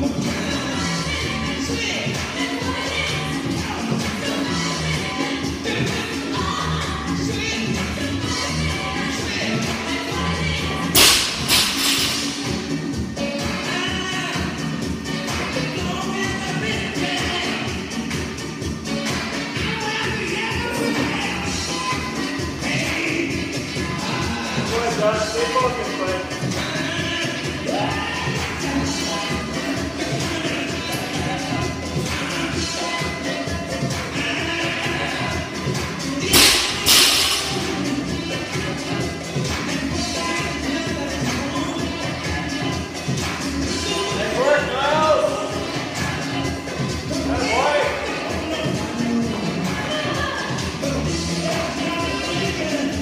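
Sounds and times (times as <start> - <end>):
background music: 0.0 - 53.0
barbell dropped on gym floor: 11.0 - 12.5, 36.3 - 37.8
sharp noise: 11.0 - 12.7, 36.3 - 38.0
rock music: 31.8 - 41.8.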